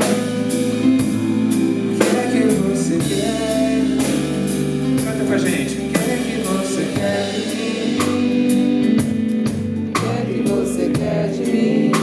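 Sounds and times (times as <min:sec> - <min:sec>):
bass: 0:00.0 - 0:12.0
drums: 0:00.0 - 0:12.0
electric guitar: 0:00.0 - 0:12.0
keyboards: 0:00.0 - 0:12.0
man singing: 0:01.8 - 0:09.1, 0:10.0 - 0:12.0.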